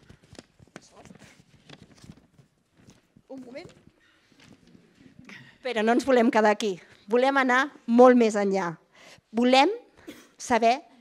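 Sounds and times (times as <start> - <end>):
paper rustling: 0.0 - 5.0.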